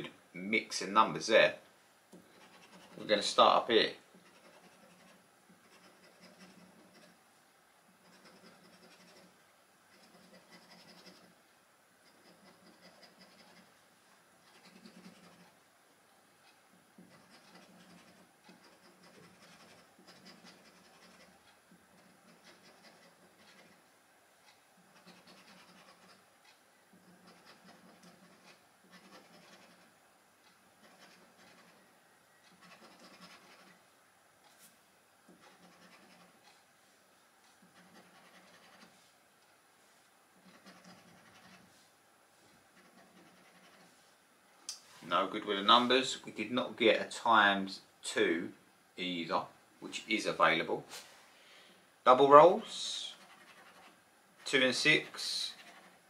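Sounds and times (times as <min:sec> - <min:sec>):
scratching a scratchcard: 0:02.1 - 0:07.2, 0:07.8 - 0:11.4, 0:12.0 - 0:13.8, 0:14.4 - 0:15.6, 0:16.4 - 0:30.0, 0:30.8 - 0:33.8, 0:34.4 - 0:36.6, 0:37.5 - 0:39.1, 0:40.4 - 0:41.8, 0:42.7 - 0:44.1, 0:52.1 - 0:56.0.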